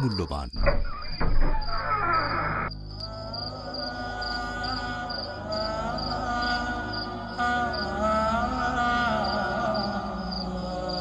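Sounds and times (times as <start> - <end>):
crickets chirping: 0.0 - 11.0
slow wordless melody: 2.7 - 11.0.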